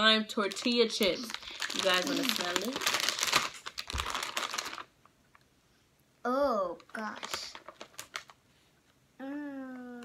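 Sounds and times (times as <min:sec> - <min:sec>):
plastic chip bag crinkling: 0:00.0 - 0:05.0, 0:06.9 - 0:08.4.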